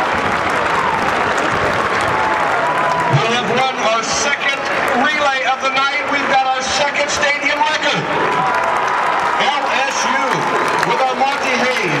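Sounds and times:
applause: 0.0 - 12.0
stadium crowd noise: 0.0 - 12.0
man's voice: 3.1 - 8.2, 9.4 - 12.0.

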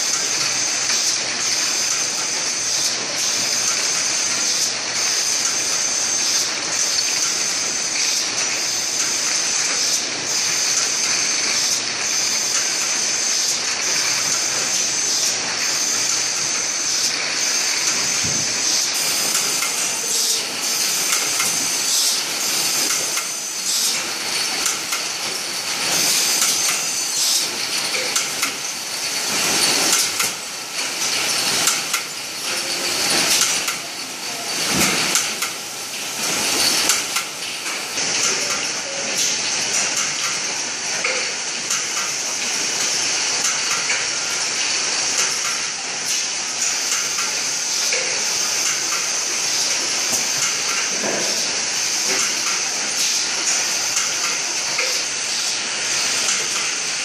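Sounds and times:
steady machine hiss: 0.0 - 57.0
packing machine clattering: 17.8 - 40.5.

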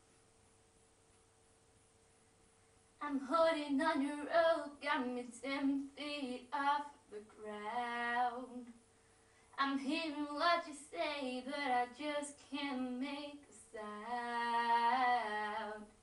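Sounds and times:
girl singing unaccompanied: 3.0 - 8.9, 9.5 - 16.0.

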